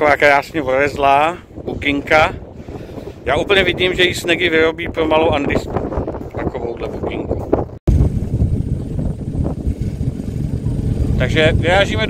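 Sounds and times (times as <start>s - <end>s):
dune buggy engine rumble: 0.0s - 12.0s
wind buffeting: 0.0s - 12.0s.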